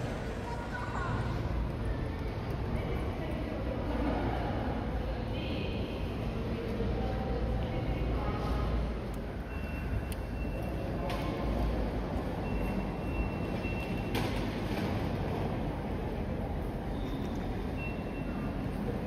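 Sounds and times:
background noise: 0:00.0 - 0:19.0.

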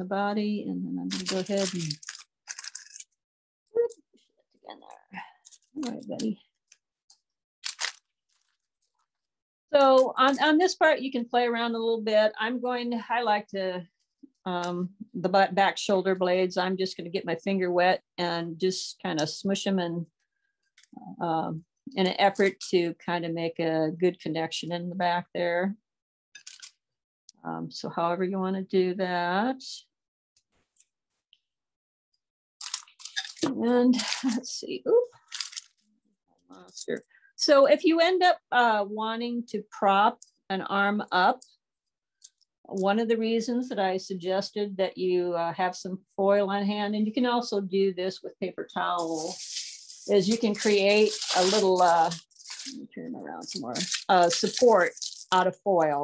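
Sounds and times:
crackly rustle of plastic sheet: 0:01.1 - 0:03.0, 0:49.0 - 0:52.8, 0:53.4 - 0:55.4
paper crinkling: 0:01.1 - 0:03.2, 0:07.6 - 0:08.9, 0:26.4 - 0:26.7, 0:32.6 - 0:34.4, 0:35.2 - 0:35.8, 0:49.0 - 0:52.8, 0:53.4 - 0:55.5.

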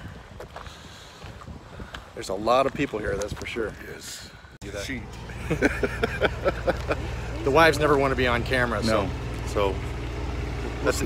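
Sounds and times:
wind rumbling on microphone: 0:00.0 - 0:04.6.

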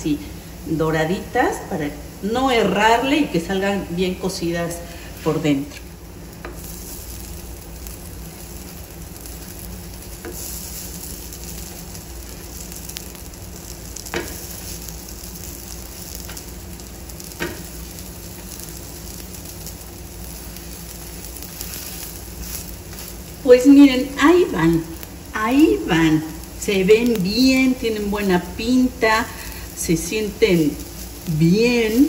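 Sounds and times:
dough sizzling on hot griddle: 0:00.0 - 0:32.0
person speaking: 0:23.4 - 0:32.0.

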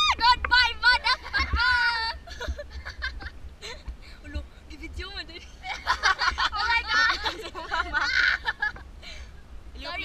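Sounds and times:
people laughing and chatting: 0:00.0 - 0:04.1, 0:05.3 - 0:10.0
wind rumbling on microphone: 0:00.0 - 0:10.0.

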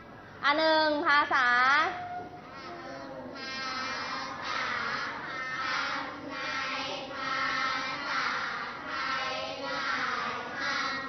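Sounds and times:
voices chanting together: 0:03.2 - 0:11.0.

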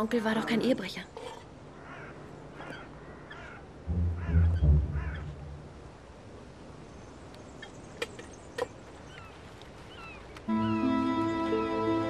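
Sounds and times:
birds calling: 0:00.0 - 0:11.6
loud low deep sound: 0:03.9 - 0:06.2.

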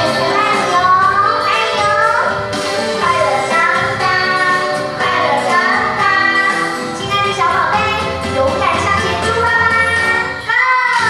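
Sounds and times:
children singing song with music: 0:00.0 - 0:11.0.

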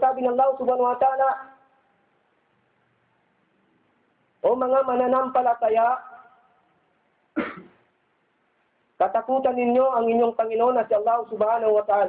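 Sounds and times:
short cough: 0:07.3 - 0:07.9.

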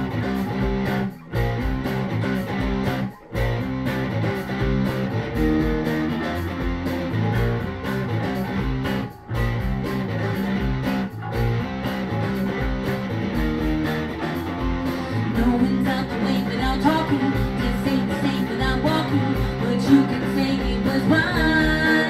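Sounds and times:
electric bass: 0:00.0 - 0:22.0
electric guitar: 0:00.0 - 0:22.0
rock band instrumental: 0:00.0 - 0:22.0.

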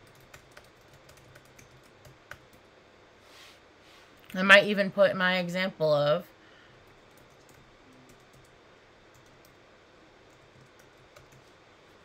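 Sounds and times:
typing on keyboard: 0:00.0 - 0:02.6, 0:06.9 - 0:08.5, 0:09.1 - 0:09.6, 0:10.3 - 0:11.6
low background hiss: 0:00.0 - 0:12.0.

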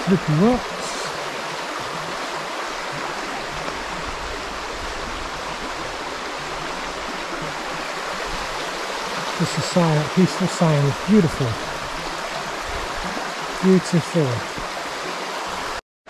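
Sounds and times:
stream running over rocks: 0:00.0 - 0:15.8.

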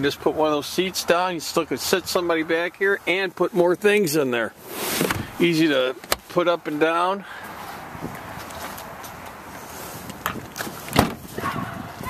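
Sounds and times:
shuffling steps: 0:06.2 - 0:12.0
car liftgate shutting thump: 0:10.9 - 0:11.2.

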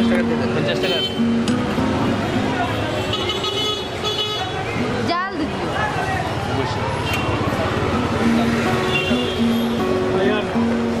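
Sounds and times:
busy street traffic: 0:00.0 - 0:11.0
voices of passers-by: 0:00.0 - 0:11.0
vehicle horn: 0:03.0 - 0:04.6, 0:08.8 - 0:09.8.

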